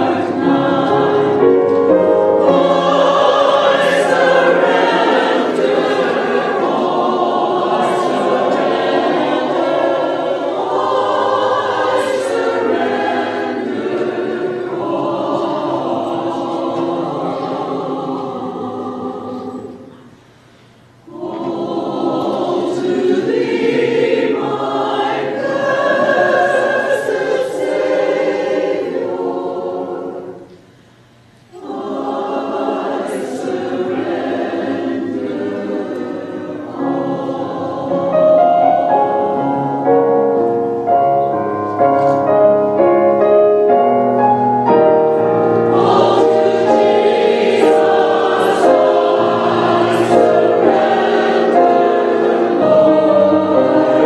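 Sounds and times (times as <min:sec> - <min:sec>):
choir breaths: 0:00.0 - 0:39.5, 0:45.0 - 0:54.0
church choir singing a hymn: 0:00.0 - 0:54.0.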